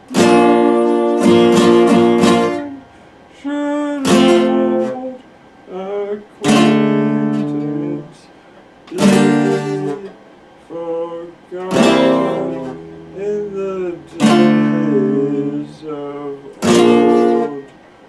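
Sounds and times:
acoustic guitar strummed chords: 0:00.0 - 0:08.2, 0:08.8 - 0:17.9.

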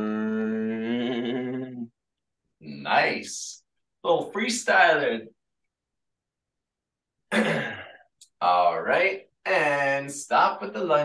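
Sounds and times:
man clearing his throat: 0:07.3 - 0:08.1.

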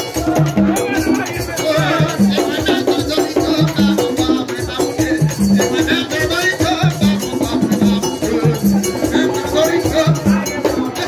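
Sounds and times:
hand drums beating: 0:00.0 - 0:11.0
metal bell: 0:00.0 - 0:11.0
voices singing: 0:00.0 - 0:11.0.

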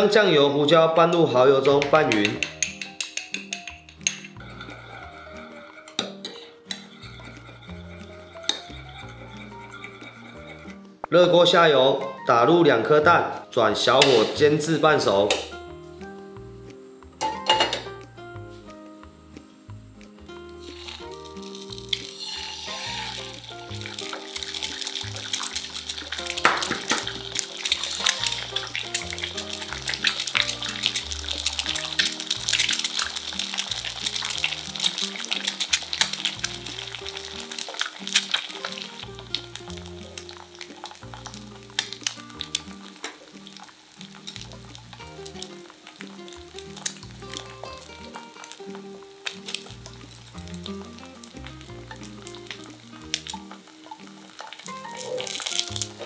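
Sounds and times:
background music: 0:00.0 - 0:56.0
eggs sizzling in oil: 0:00.0 - 0:56.0.

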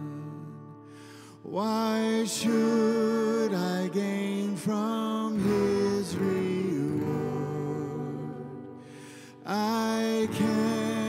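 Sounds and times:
strummed acoustic guitar: 0:00.0 - 0:11.0
people singing worship song: 0:01.4 - 0:11.0.

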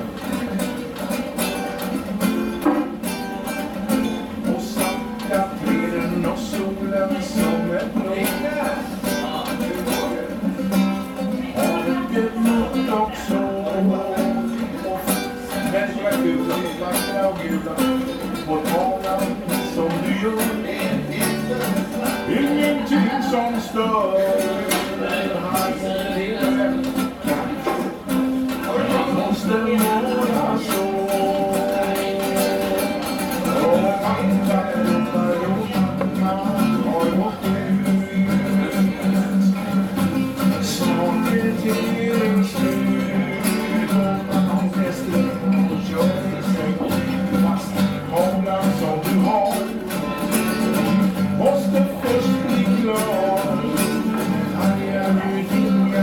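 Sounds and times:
acoustic guitar strumming: 0:00.0 - 0:56.0
man singing: 0:00.0 - 0:56.0.

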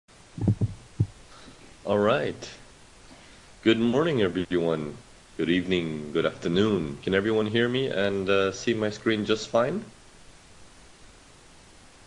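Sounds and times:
low thumps: 0:00.4 - 0:01.2
man talking: 0:01.8 - 0:02.7, 0:03.6 - 0:10.0.

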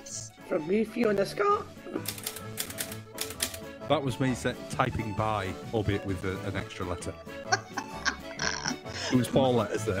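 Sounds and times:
typewriter keys struck: 0:02.0 - 0:03.6.

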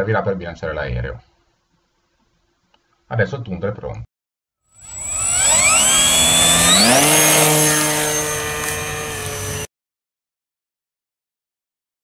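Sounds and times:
gliding electronic chord: 0:04.8 - 0:09.7.

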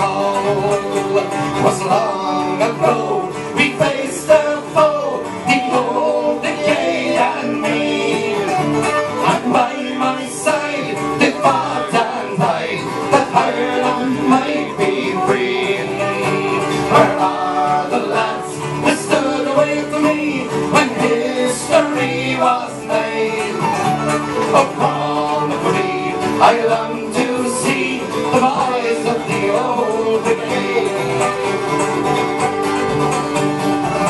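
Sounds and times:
banjo: 0:00.0 - 0:34.0
strummed acoustic guitar: 0:00.0 - 0:34.0
flute melody: 0:04.8 - 0:10.1, 0:23.1 - 0:25.2.

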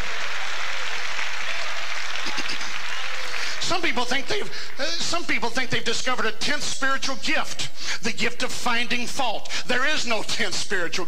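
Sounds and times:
congregation applauding: 0:00.0 - 0:05.1.

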